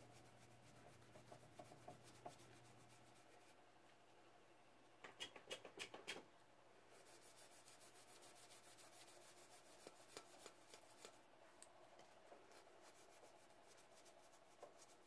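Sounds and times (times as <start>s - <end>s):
cloth rag rubbing on metal: 7.0s - 10.5s.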